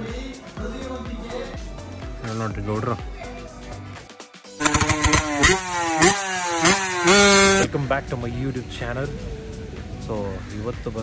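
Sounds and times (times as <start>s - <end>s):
motorcycle engine accelerating: 4.6s - 7.7s.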